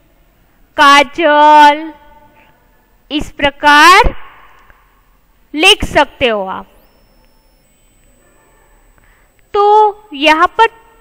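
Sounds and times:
high-pitched whine: 4.0s - 11.0s.

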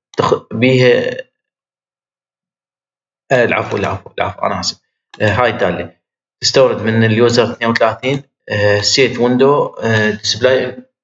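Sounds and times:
man speaking: 0.2s - 1.2s, 3.3s - 10.9s.

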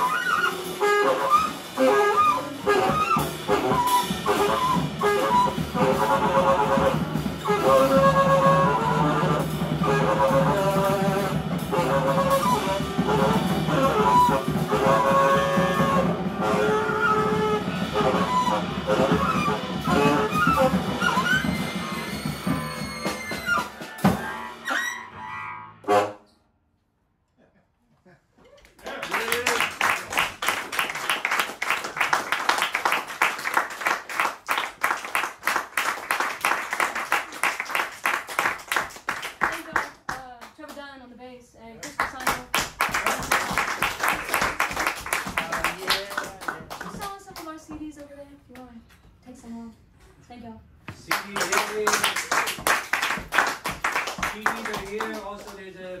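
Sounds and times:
busy drumming: 0.0s - 24.5s, 29.0s - 40.8s, 41.8s - 48.3s, 50.9s - 56.0s
tenor saxophone: 0.0s - 26.5s.

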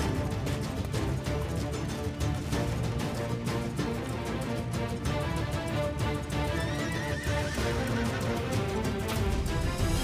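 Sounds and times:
soundtrack music: 0.0s - 10.0s
horse whinnying: 6.4s - 7.9s.

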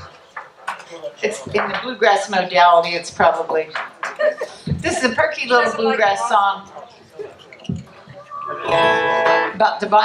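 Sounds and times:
acoustic guitar plucking and strumming: 8.4s - 9.7s.

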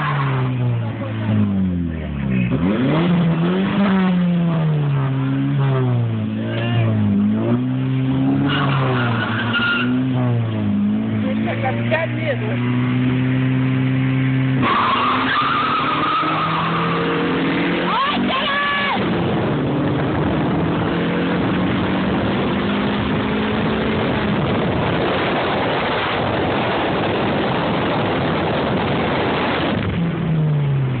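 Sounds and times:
tires squealing: 0.0s - 21.7s
car engine accelerating: 0.0s - 31.0s.

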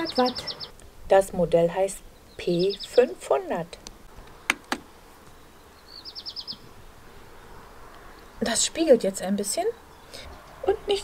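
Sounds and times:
small bird trilling: 0.0s - 0.7s, 2.3s - 3.1s, 5.8s - 6.6s
faint background noise: 0.0s - 11.0s.

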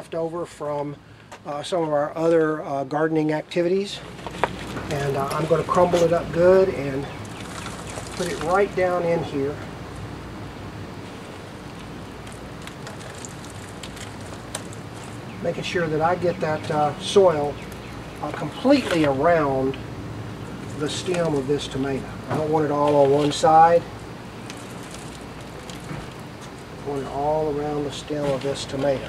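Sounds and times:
steady outdoor hiss: 0.0s - 29.0s
soil rustling: 4.0s - 10.1s, 11.0s - 19.7s, 24.4s - 29.0s.

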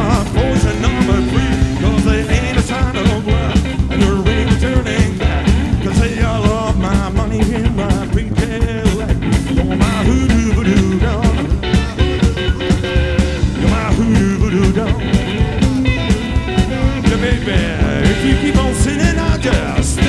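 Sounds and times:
drums steady beat: 0.0s - 20.0s
electric guitar bending lines: 0.0s - 20.0s
upright double bass: 0.0s - 20.0s.

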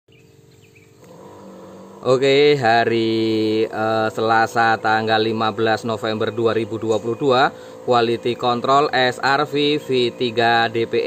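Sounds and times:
faint bird chirps: 0.1s - 2.0s
sprayer pump humming: 0.1s - 11.0s.

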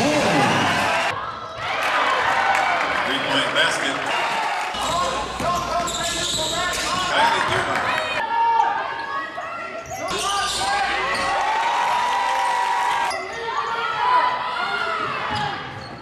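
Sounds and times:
indistinct voices in large hall: 0.0s - 16.0s.

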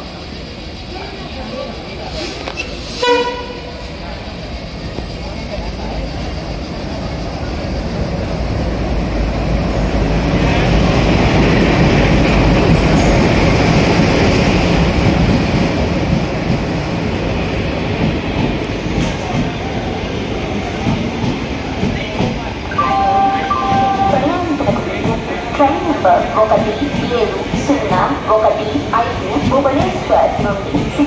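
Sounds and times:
train rumbling past: 0.0s - 31.0s
train horn blast: 3.0s - 3.7s, 22.8s - 24.5s.

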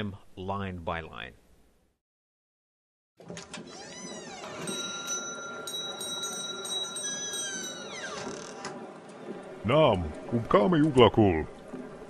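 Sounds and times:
bell-like tone ringing: 4.6s - 8.1s.

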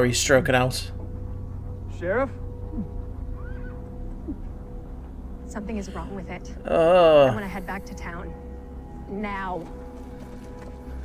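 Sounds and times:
steady low hum: 0.0s - 11.0s
horse whinnying: 2.7s - 4.4s.

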